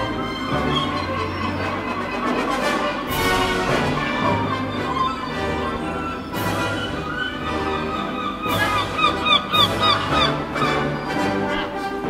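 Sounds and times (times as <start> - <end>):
orchestral music: 0.0 - 12.0
birds giving short calls: 4.3 - 11.6.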